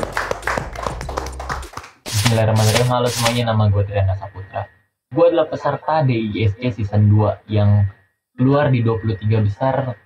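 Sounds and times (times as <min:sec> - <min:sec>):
people clapping rapidly: 0:00.0 - 0:03.4.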